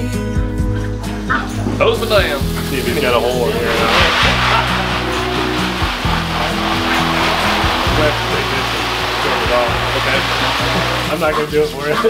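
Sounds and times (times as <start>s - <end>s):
background music with low notes: 0.0s - 12.0s
hose spraying water on plastic: 1.8s - 12.0s.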